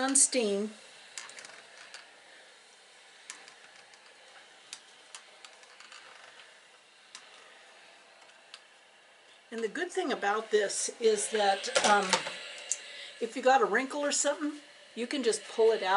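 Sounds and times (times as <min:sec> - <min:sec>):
steam iron hiss: 0:00.0 - 0:15.9.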